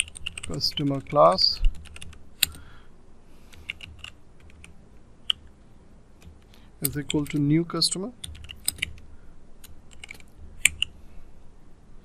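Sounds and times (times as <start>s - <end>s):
keyboard key clicks: 8.2s - 9.0s.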